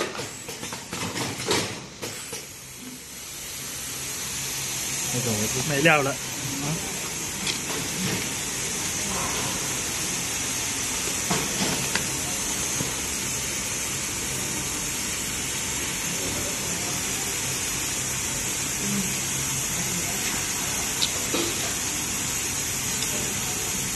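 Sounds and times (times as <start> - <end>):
cartoning machine hiss and hum: 0.0 - 23.9.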